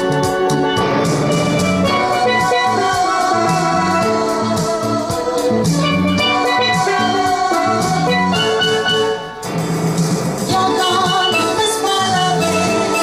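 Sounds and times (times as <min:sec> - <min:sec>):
steel pan melody: 0:00.0 - 0:13.0.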